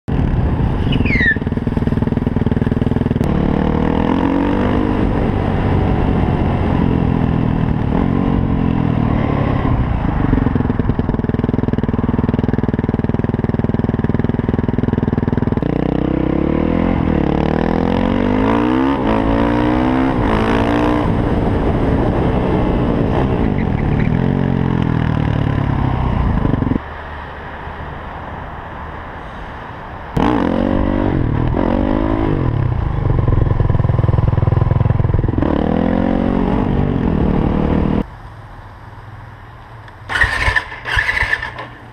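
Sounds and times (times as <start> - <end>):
motorcycle engine revving: 0.1 - 26.8, 30.2 - 38.1, 40.0 - 41.9.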